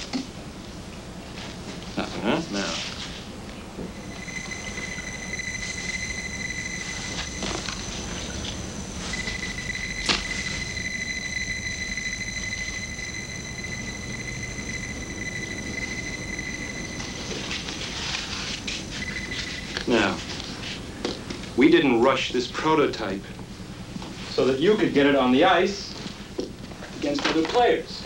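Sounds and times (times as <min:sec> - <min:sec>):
high-pitched electronic tone: 0:03.9 - 0:20.2.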